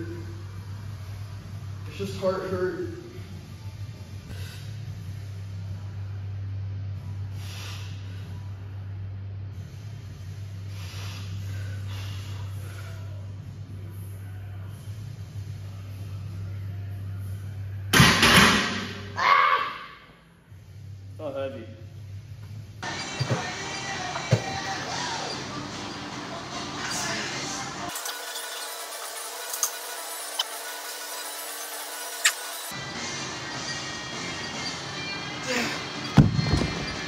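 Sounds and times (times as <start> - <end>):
faint music: 0.0 - 28.4, 32.7 - 37.0
steady low hum: 2.8 - 18.0
gym room noise: 3.2 - 21.2, 22.0 - 37.0.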